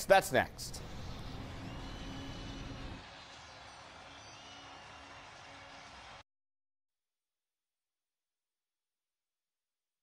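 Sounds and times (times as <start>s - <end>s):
stadium crowd noise: 0.6s - 6.2s.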